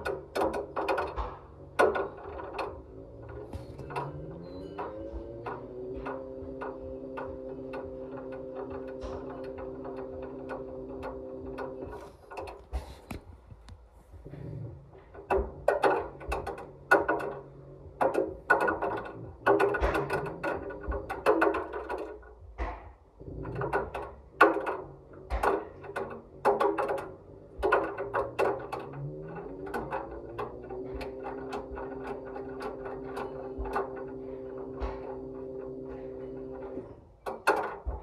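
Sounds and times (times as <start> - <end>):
ball knocking in washing machine drum: 0.0 - 38.0
washing machine motor hum: 0.0 - 38.0.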